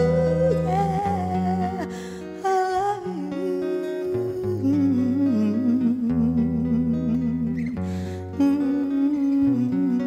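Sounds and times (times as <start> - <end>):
slow instrumental song: 0.0 - 10.0.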